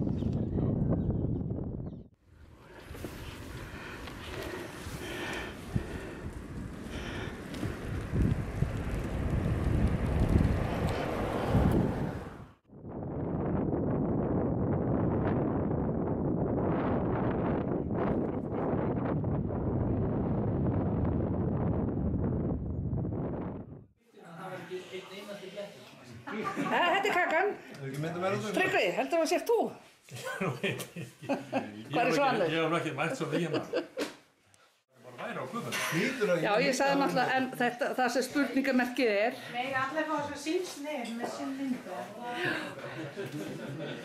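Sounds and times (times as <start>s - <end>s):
wind on microphone: 0.0s - 23.9s.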